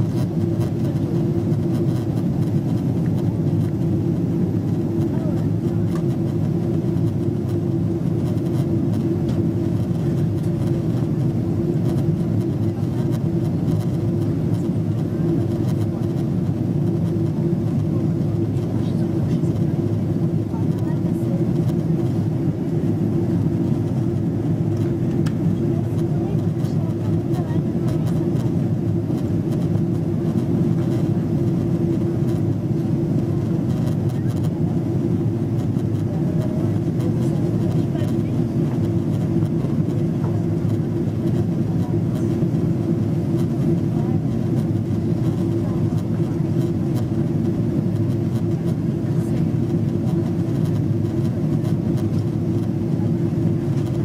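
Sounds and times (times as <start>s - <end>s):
jet engines droning: 0.0s - 54.0s
steady low hum: 0.0s - 54.0s.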